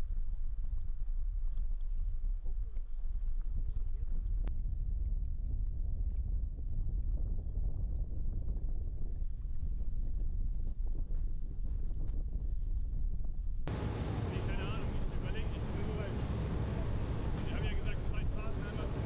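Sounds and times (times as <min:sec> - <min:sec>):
wind on microphone: 0:00.0 - 0:19.0
boat engine rumbling: 0:13.7 - 0:19.0.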